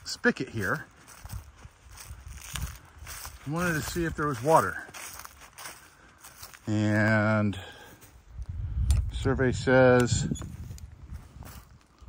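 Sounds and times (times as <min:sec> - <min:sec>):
footsteps on dry leaves: 0:00.0 - 0:08.3, 0:10.5 - 0:12.0.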